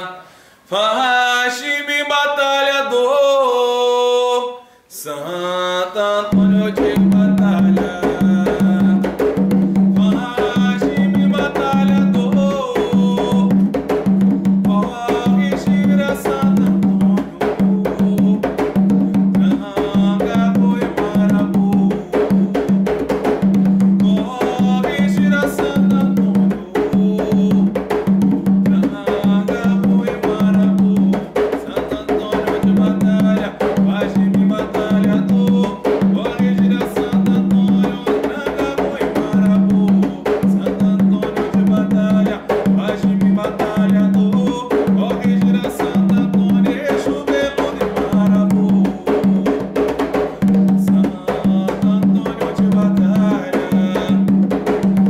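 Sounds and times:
hand drums beating: 6.4s - 55.0s
people singing: 14.8s - 18.5s, 28.8s - 49.6s, 51.0s - 54.2s.

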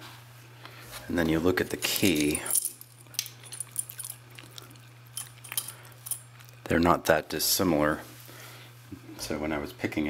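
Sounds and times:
steady low hum: 0.1s - 10.0s
keys clicking on keyring: 1.8s - 6.3s.

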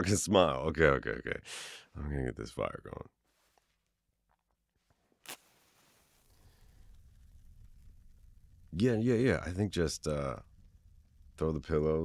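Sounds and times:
match strike: 5.1s - 8.3s
faint hiss: 5.1s - 12.0s
low fire rumble: 5.5s - 12.0s.

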